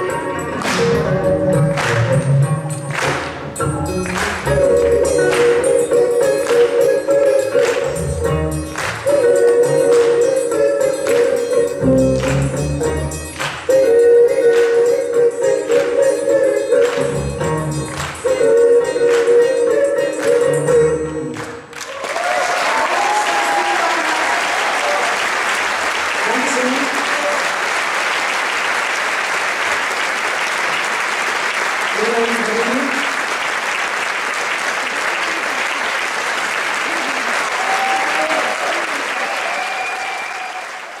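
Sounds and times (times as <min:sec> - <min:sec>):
audience applause: 0:21.3 - 0:41.0
scattered cheers: 0:21.9 - 0:25.3, 0:36.9 - 0:41.0.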